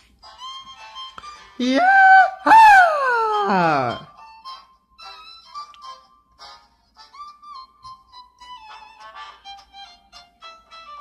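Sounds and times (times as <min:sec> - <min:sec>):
man's falsetto whoop: 0:01.6 - 0:04.1.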